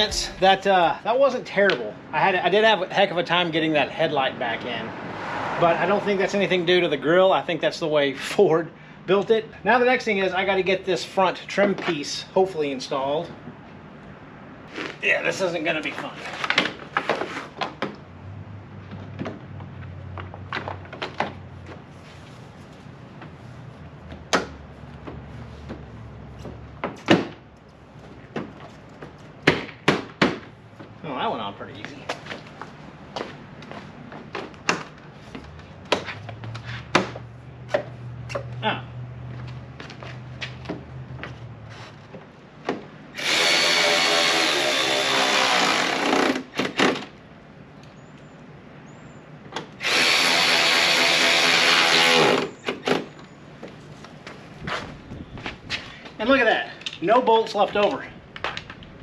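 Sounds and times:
cordless drill driving fasteners: 43.2 - 47.1, 49.8 - 53.1.

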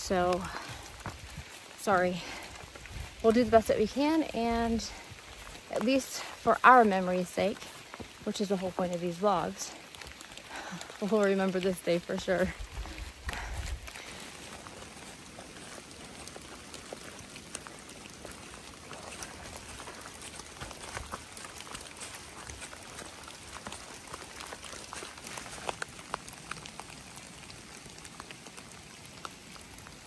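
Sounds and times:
rain falling in woods: 0.0 - 30.0
raindrops ticking near microphone: 0.0 - 30.0.

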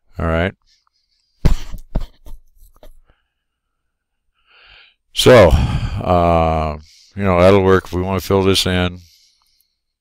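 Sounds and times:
faint breath in: 0.6 - 1.6, 3.0 - 6.1, 6.8 - 7.3, 9.0 - 10.0.

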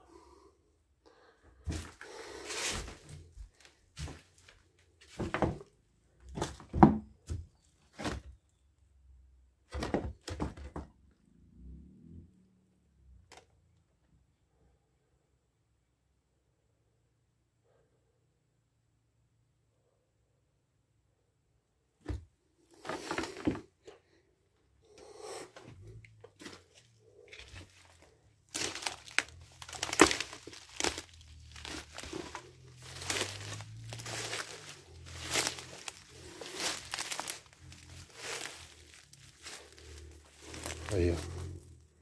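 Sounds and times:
footsteps through undergrowth: 1.7 - 5.7, 26.3 - 41.8.

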